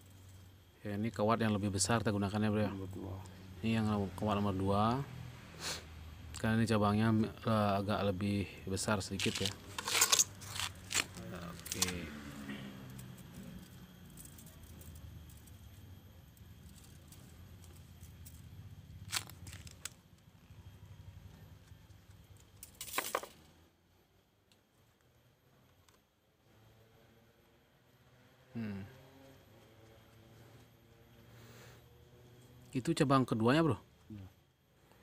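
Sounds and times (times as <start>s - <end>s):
wire jangling and rustling: 9.2s - 12.0s.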